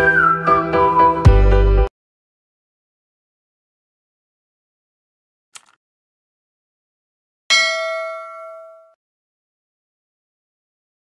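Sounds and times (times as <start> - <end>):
notification bell ding: 7.5 - 9.0.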